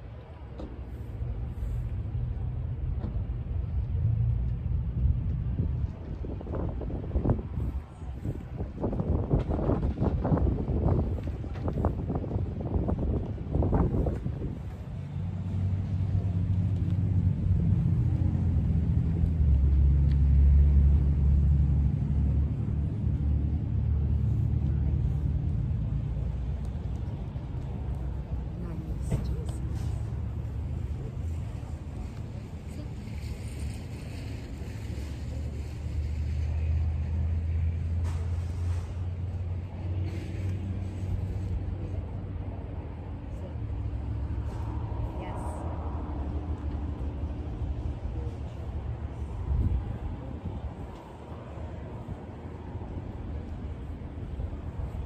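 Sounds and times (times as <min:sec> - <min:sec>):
vehicle engine running: 0:00.0 - 0:55.0.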